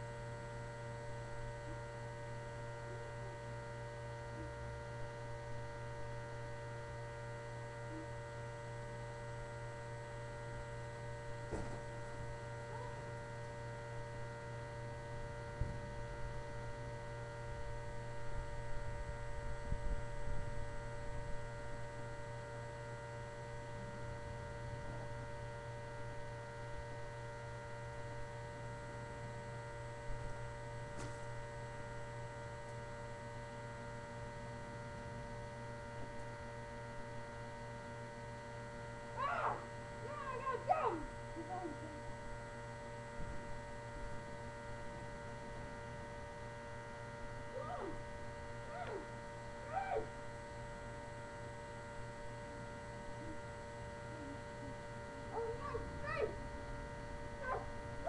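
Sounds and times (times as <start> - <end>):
steady electrical hum: 0.0 - 58.0.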